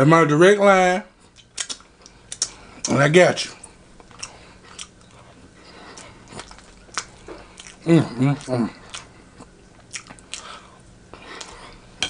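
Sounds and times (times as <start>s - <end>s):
person chewing food: 1.2s - 3.0s, 3.6s - 12.0s
wet mouth clicks and smacks: 1.4s - 2.6s.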